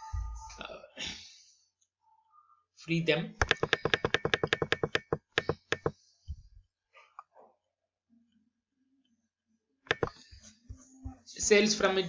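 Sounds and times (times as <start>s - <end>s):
mouse scroll wheel clicking: 3.4s - 6.0s, 9.9s - 10.2s.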